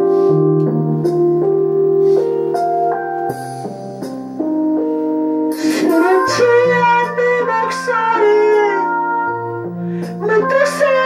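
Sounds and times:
keyboard chords backing track: 0:00.0 - 0:11.0.

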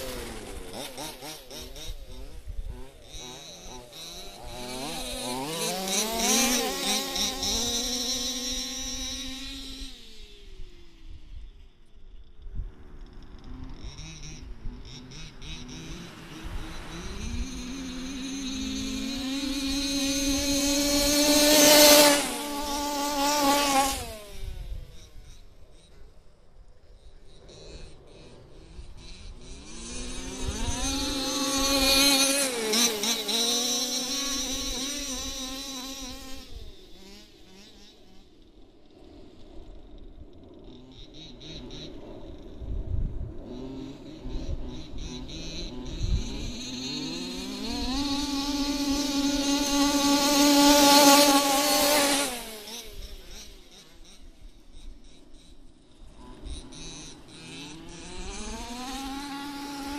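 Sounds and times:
rc car engines buzzing: 0:00.0 - 0:59.9.

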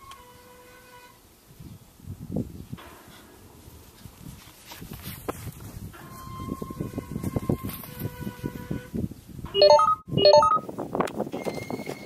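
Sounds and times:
rustling: 0:02.7 - 0:08.5
phone jingle beeps: 0:09.6 - 0:10.6.

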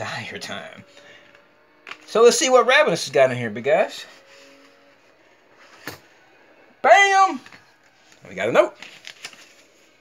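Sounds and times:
paper mailer rustling: 0:07.2 - 0:10.0.

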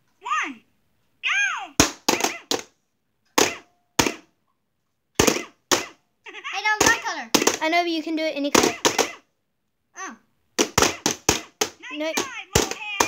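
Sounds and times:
plastic mallets whacking toy: 0:01.8 - 0:04.3, 0:05.2 - 0:06.0, 0:06.6 - 0:07.7, 0:08.5 - 0:09.3, 0:10.6 - 0:13.0.

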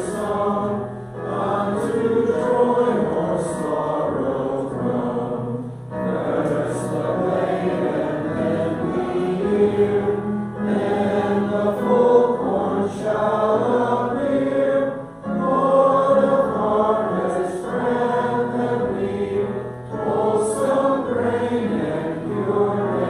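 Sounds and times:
digital piano: 0:00.0 - 0:23.0
voices singing together: 0:00.0 - 0:23.0.

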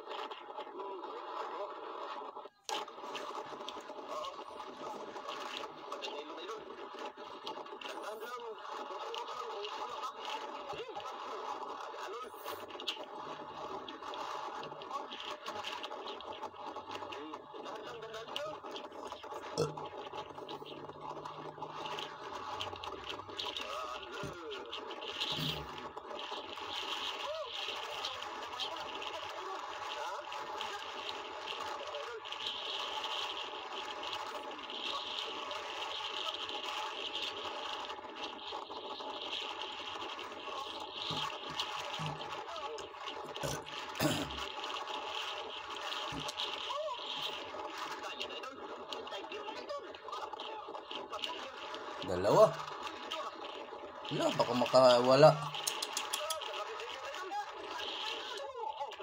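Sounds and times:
steady background noise: 0:00.0 - 0:49.4, 0:50.2 - 0:56.7
muffled voices: 0:00.0 - 0:59.0.

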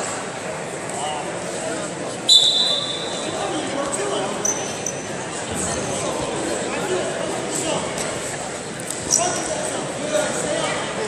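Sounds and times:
indistinct voices in sports hall: 0:00.0 - 0:11.0.

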